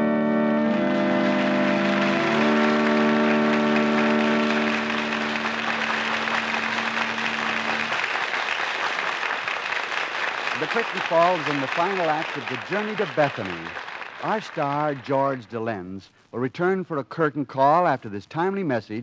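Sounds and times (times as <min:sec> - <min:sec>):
organ playing chords: 0:00.0 - 0:09.3, 0:10.2 - 0:15.4
audience applauding: 0:00.5 - 0:15.6.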